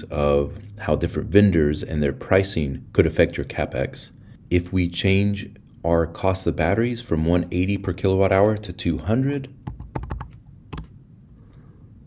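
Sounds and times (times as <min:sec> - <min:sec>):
computer keyboard keystrokes: 0:09.6 - 0:10.9.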